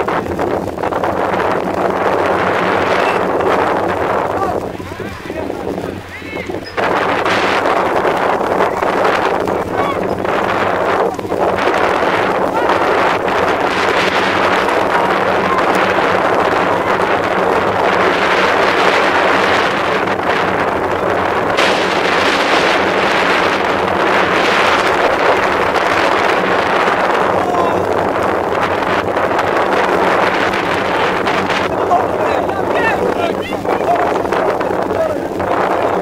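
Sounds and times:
wind buffeting microphone: 0.0s - 36.0s.

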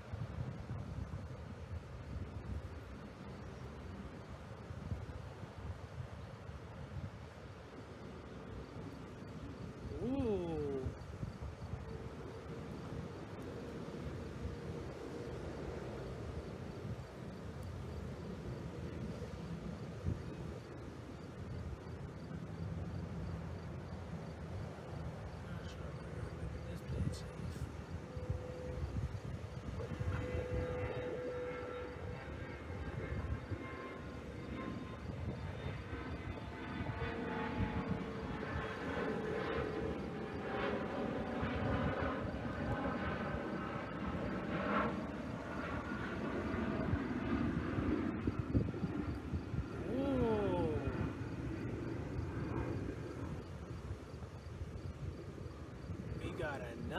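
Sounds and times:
distant jet airliner rumble: 0.0s - 56.9s
jet engine whine: 0.0s - 56.9s.

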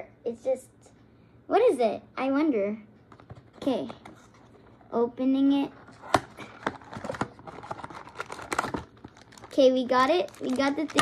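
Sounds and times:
wrapper crackling: 6.8s - 11.0s.

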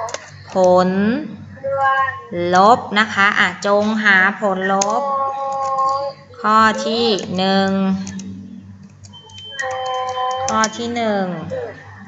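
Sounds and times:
computer keyboard clicks: 0.0s - 0.7s, 7.2s - 10.8s
faint high tone: 4.6s - 12.0s.

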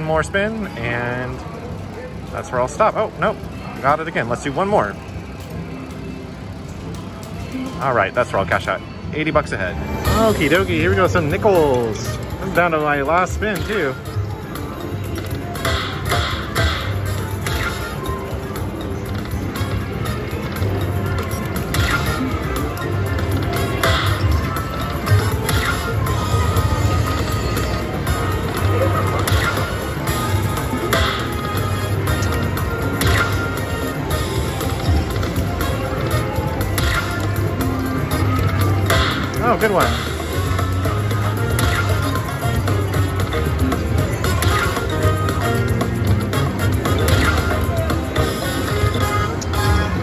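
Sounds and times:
low casino hum: 0.0s - 50.0s
slot machine bonus music: 9.5s - 50.0s.

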